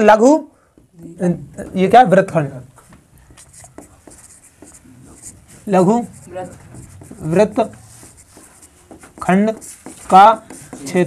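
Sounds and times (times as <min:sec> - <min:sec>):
marker scratching on whiteboard: 0:00.7 - 0:11.0
marker tip tapping: 0:08.1 - 0:10.9.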